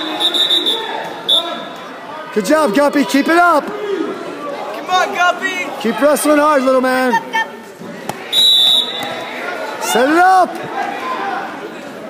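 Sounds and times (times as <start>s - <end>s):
referee's whistle blast: 0.0s - 1.6s, 8.3s - 9.2s
faint crowd chatter: 0.0s - 12.0s.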